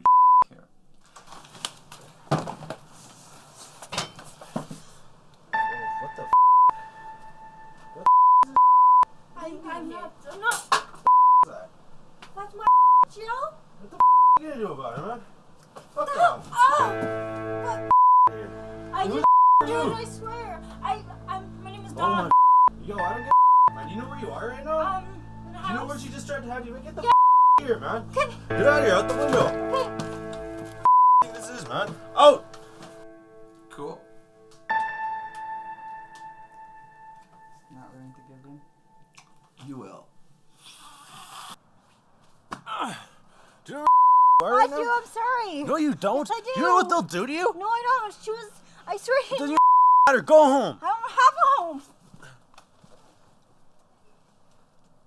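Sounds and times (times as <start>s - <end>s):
censor bleeps: 0.0s - 0.4s, 6.3s - 6.8s, 8.0s - 9.1s, 11.1s - 11.5s, 12.6s - 13.1s, 14.0s - 14.4s, 17.9s - 18.4s, 19.2s - 19.7s, 22.3s - 23.8s, 27.1s - 27.6s, 30.8s - 31.4s, 43.9s - 44.5s, 49.6s - 50.1s
background music with held notes: 5.5s - 8.1s, 16.6s - 39.6s
sharp nasal snort: 40.6s - 41.6s.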